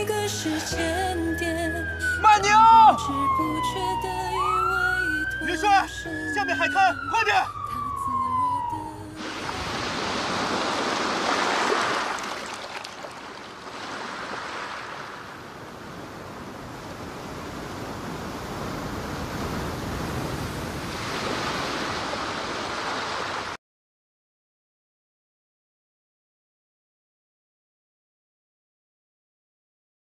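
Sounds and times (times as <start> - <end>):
ambulance siren wail: 0.4 - 9.2
waves breaking: 9.2 - 23.6.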